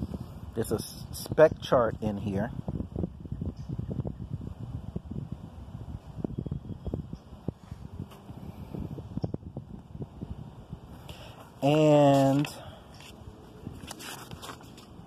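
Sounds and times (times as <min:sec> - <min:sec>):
wind rumbling on microphone: 0:00.0 - 0:15.0
paper pages rustling: 0:11.6 - 0:15.0.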